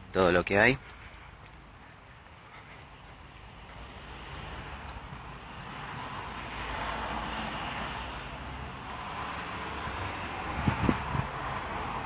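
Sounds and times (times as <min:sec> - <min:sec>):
rushing vehicle noise: 0:00.0 - 0:12.0.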